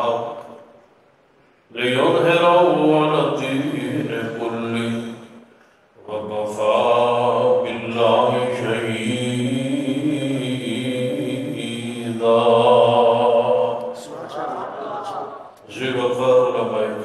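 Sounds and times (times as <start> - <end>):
man chanting: 0.0 - 0.7, 1.7 - 5.4, 6.0 - 17.0.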